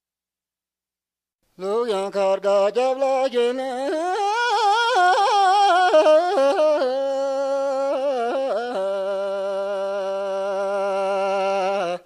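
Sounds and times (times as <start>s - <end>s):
person singing folk song: 1.5s - 12.0s.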